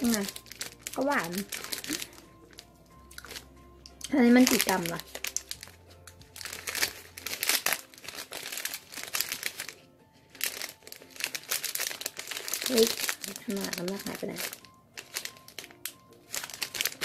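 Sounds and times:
plastic snack wrapper crinkling: 0.0s - 17.0s.

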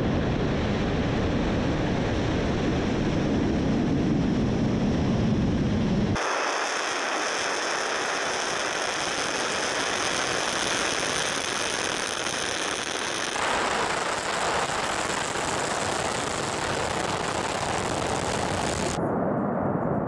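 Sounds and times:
rocket engine exhaust rush: 0.1s - 19.0s.

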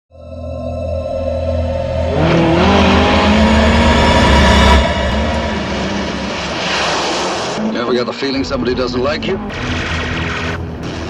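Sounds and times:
music: 0.1s - 3.8s, 8.1s - 11.0s
road noise: 1.5s - 11.0s
car engine accelerating: 1.7s - 11.0s.

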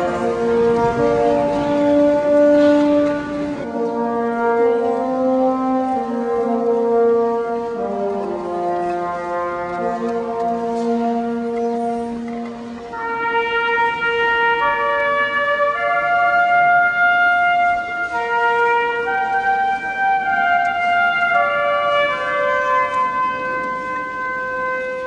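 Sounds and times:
wind band playing slow tune: 0.0s - 25.0s.

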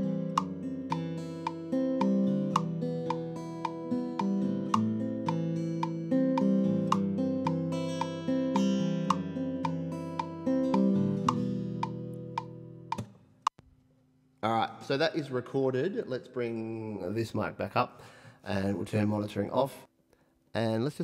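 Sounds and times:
acoustic guitar strumming chords: 0.0s - 13.2s.

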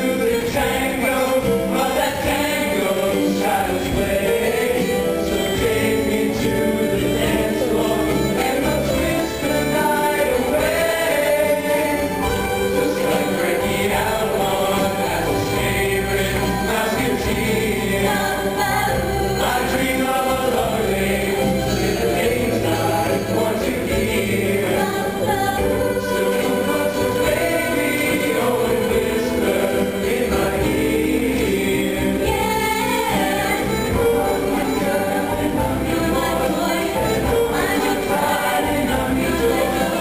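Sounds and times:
mixed choir singing: 0.0s - 40.0s.

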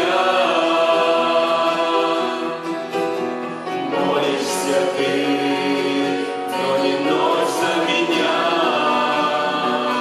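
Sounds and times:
vocal group singing worship song: 0.0s - 2.9s, 3.8s - 10.0s.

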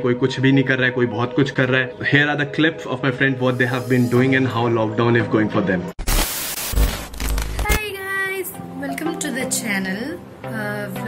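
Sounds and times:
person speaking: 3.5s - 4.6s
tv static hiss: 6.0s - 7.8s.

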